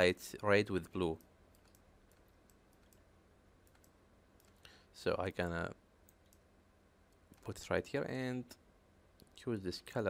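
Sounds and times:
low steady hum: 0.0 - 10.0
computer mouse clicks: 1.1 - 4.8, 6.0 - 6.5.

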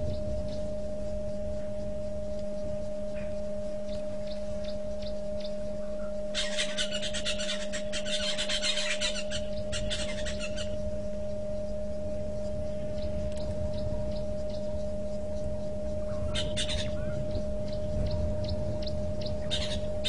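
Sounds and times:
outdoor waterhole ambience: 0.0 - 20.0
steady electrical hum: 0.0 - 20.0
rapid high rattling animal call: 3.9 - 10.8, 15.6 - 20.0.

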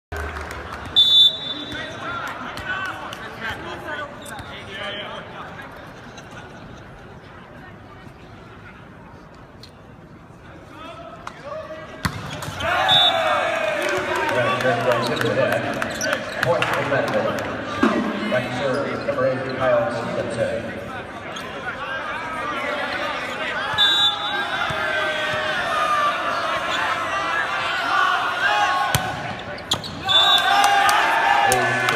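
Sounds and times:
voices in an arena: 0.1 - 31.9
referee's whistle blast: 1.0 - 1.9, 12.6 - 13.3, 23.7 - 24.5.

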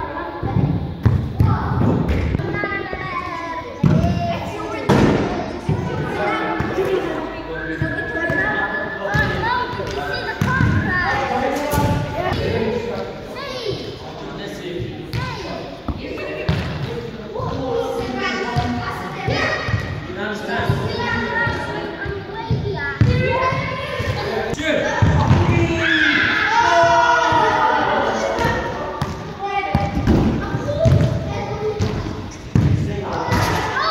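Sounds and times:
children's voices: 0.0 - 14.4, 17.2 - 33.9.

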